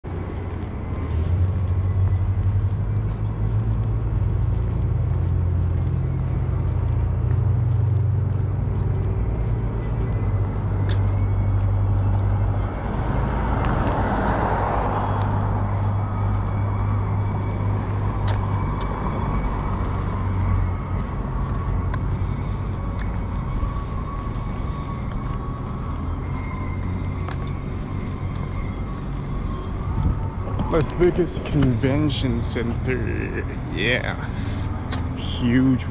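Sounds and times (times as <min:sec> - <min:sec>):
low rumble of road traffic: 0:00.0 - 0:35.9
vehicle passing: 0:00.0 - 0:35.9.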